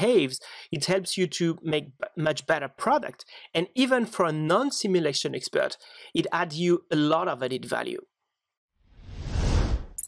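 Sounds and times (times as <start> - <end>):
whoosh sound effect: 8.9 - 10.0.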